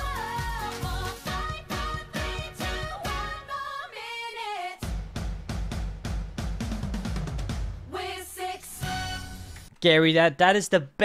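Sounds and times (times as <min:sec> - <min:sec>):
drum kit fill: 0:04.8 - 0:09.7.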